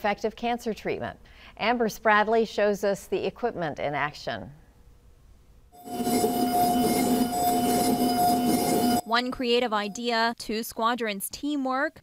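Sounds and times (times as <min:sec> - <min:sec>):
milling machine motor whine: 0:05.8 - 0:10.0.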